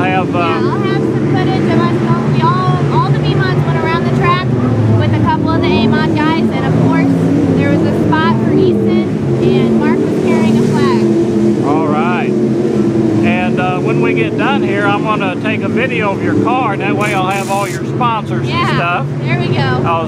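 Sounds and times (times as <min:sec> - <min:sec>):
race car engines droning: 0:00.0 - 0:20.0
woman talking: 0:00.5 - 0:11.1, 0:18.4 - 0:19.8.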